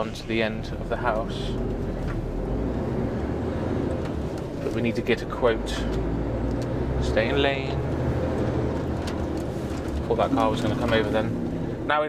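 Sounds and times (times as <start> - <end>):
lorry diesel engine droning: 0.0 - 12.0
road noise: 0.0 - 12.0.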